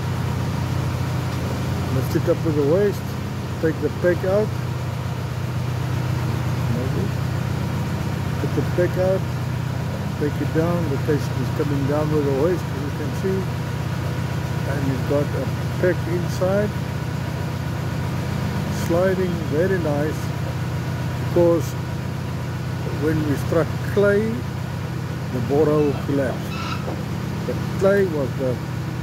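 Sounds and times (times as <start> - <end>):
drilling rig engine droning: 0.0 - 29.0.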